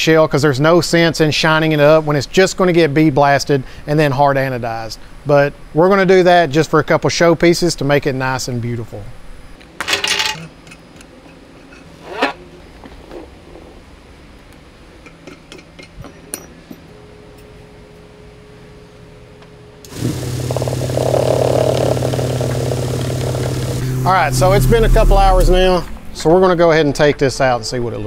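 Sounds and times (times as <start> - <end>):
vibratory tumbler running: 19.9 - 26.5.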